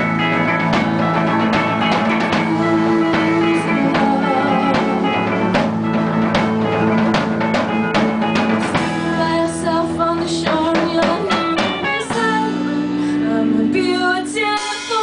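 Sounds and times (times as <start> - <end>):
drum kit: 0.0 - 15.0
electric bass: 0.0 - 15.0
electric guitar: 0.0 - 15.0
woman singing into microphone: 1.0 - 5.7, 8.7 - 15.0.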